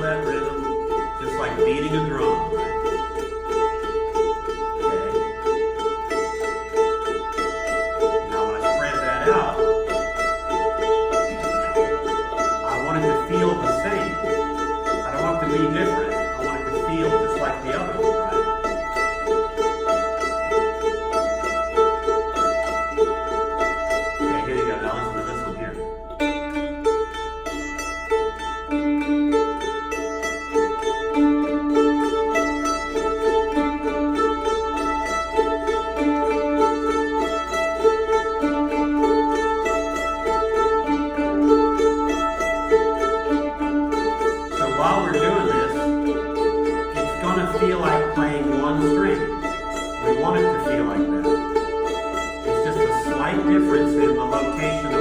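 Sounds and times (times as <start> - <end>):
voice: 0.0 - 2.9, 4.8 - 5.3, 8.2 - 9.8, 12.6 - 18.4, 24.2 - 25.9, 44.6 - 46.3, 47.0 - 51.4, 52.5 - 55.0
mandolin cross picking: 0.0 - 55.0.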